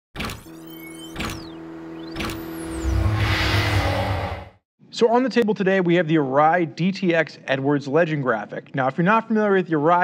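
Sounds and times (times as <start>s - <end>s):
sustained tone: 0.7s - 4.6s
sweeping whoosh: 2.0s - 4.6s.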